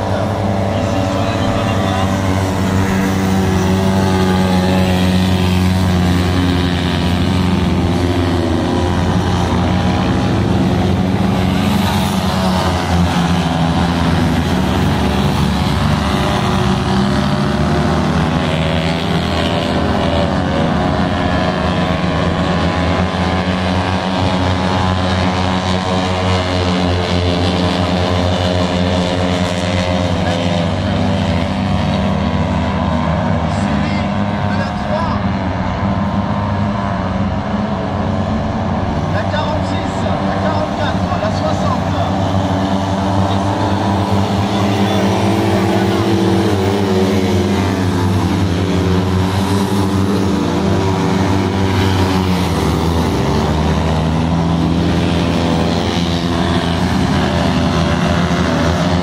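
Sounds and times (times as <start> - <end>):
boat engines running at speed: 0.0 - 59.0.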